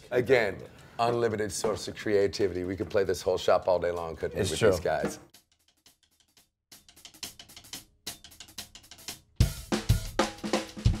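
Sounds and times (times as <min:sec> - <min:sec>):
drum kit playing: 0:01.5 - 0:05.4, 0:06.2 - 0:11.0
heavy bass drum beats: 0:07.2 - 0:11.0.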